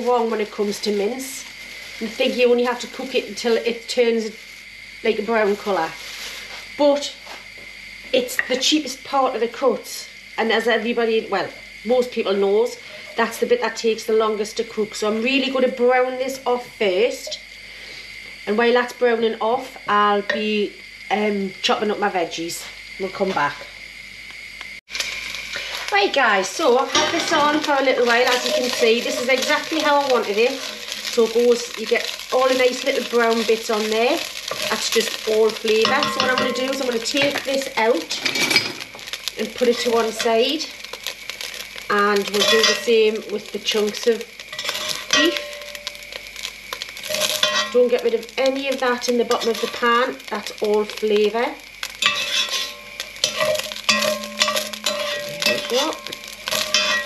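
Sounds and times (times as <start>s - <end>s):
meat sizzling in oil: 0.0s - 21.1s, 23.8s - 57.0s
metal spoon scraping a pot: 42.3s - 42.9s, 44.5s - 45.9s, 47.0s - 47.8s, 49.3s - 49.9s, 51.8s - 57.0s.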